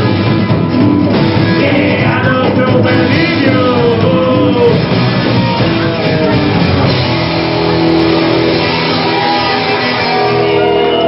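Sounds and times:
electric guitar: 0.0s - 11.0s
upright double bass: 0.0s - 11.0s.

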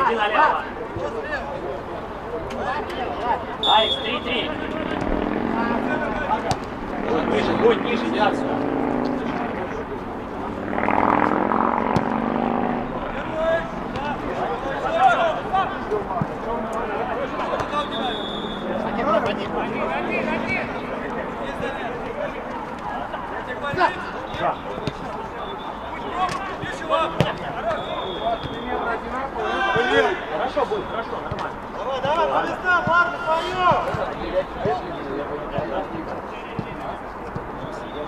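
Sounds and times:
players shouting and calling: 0.0s - 38.0s.

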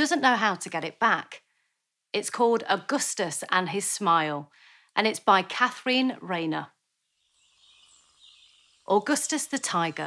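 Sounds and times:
birds chirping: 6.9s - 10.0s.

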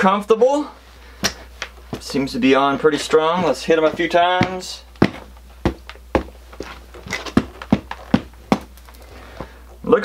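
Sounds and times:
boots stamping on concrete: 1.2s - 9.5s.

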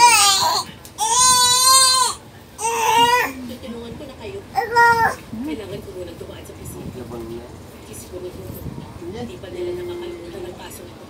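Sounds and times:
baby calling out: 0.0s - 3.4s, 4.6s - 5.2s.

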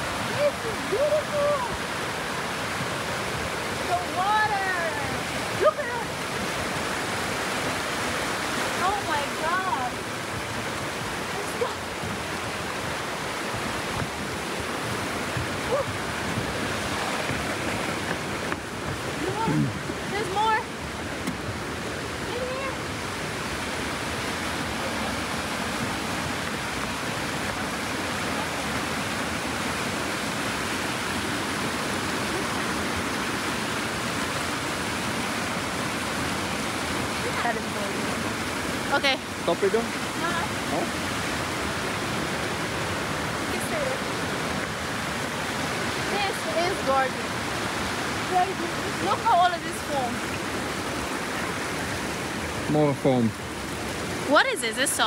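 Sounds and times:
river rapids rushing: 0.0s - 55.0s
faint voices: 19.1s - 20.7s.

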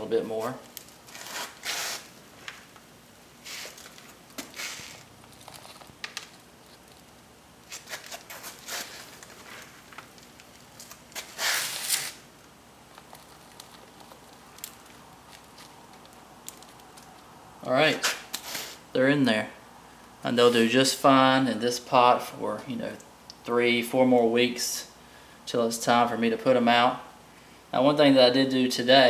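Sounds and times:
soil rustling and crumbling: 3.4s - 18.7s.

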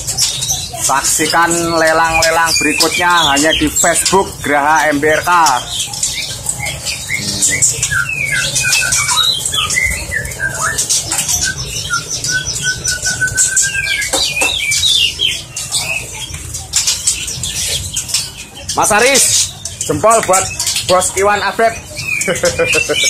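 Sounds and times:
bird repeated even notes: 0.0s - 23.0s
songbirds chirping and squawking: 0.0s - 23.0s.

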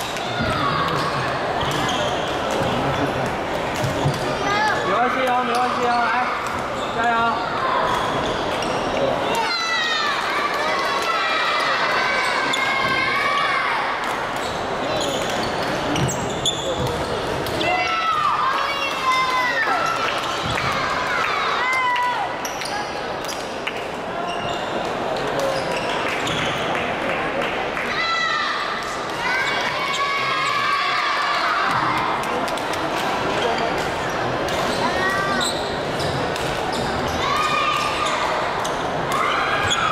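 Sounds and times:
sneakers squeaking on wooden courts: 0.3s - 9.2s, 14.3s - 17.8s, 24.2s - 26.7s, 33.3s - 39.9s.

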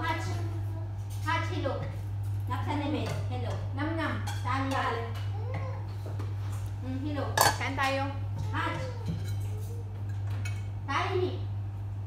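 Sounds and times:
cutlery and plates clinking: 7.4s - 7.8s, 9.0s - 10.7s.

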